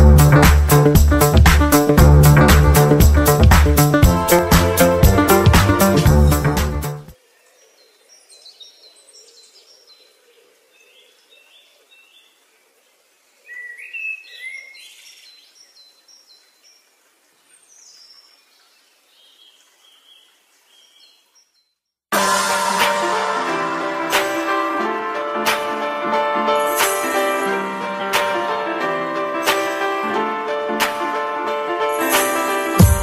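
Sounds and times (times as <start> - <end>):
loud music: 0.0 - 7.1, 22.1 - 33.0.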